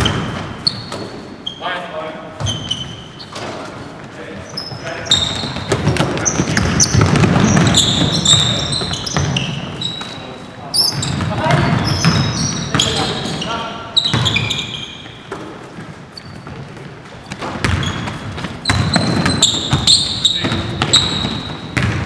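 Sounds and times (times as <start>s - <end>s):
sneakers squeaking on court: 0.0s - 22.0s
basketball bouncing: 5.1s - 10.1s, 10.9s - 13.4s, 14.0s - 14.6s, 16.4s - 22.0s.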